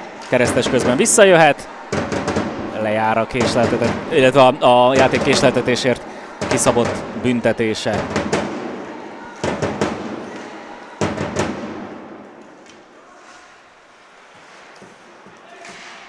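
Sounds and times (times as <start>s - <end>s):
sharp puck impacts echoing: 0.0s - 13.6s, 14.4s - 16.0s.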